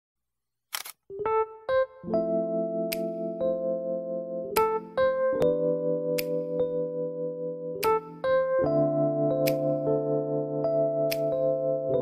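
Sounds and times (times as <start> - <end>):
camera shutter click: 0.7 - 1.0
electric piano music: 1.1 - 12.0.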